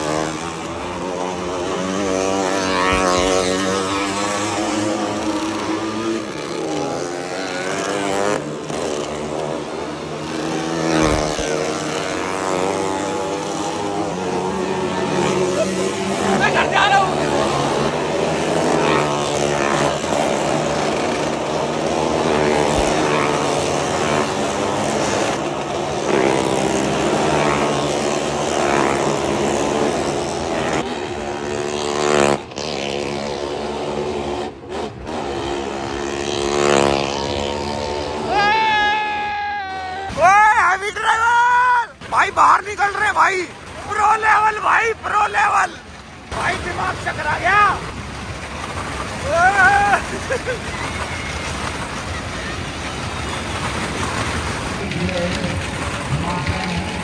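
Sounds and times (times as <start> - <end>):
motorcycle engines revving: 0.0 - 57.0.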